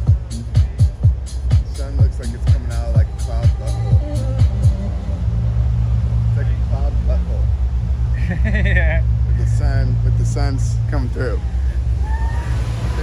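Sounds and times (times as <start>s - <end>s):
dance music beat: 0.0s - 6.3s
loud low rumble: 0.0s - 13.0s.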